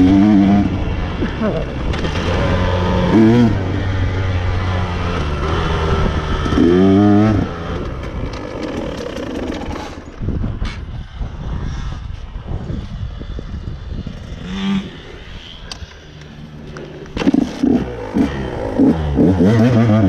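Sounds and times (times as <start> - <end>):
dirt bike engine revving: 0.0 - 10.2, 13.8 - 20.0
knocks and clatter over dirt: 1.2 - 10.9, 15.6 - 20.0.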